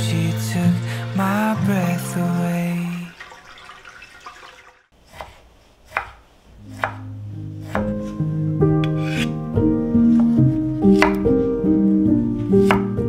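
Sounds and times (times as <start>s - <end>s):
soft background music: 0.0s - 3.3s, 6.6s - 13.0s
knife slicing on cutting board: 5.0s - 7.0s, 7.6s - 8.2s, 8.8s - 9.4s, 10.1s - 11.4s, 12.5s - 13.0s.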